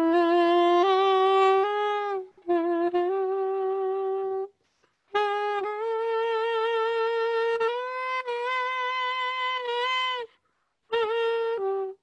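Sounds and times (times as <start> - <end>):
soprano saxophone melody: 0.0 - 12.0.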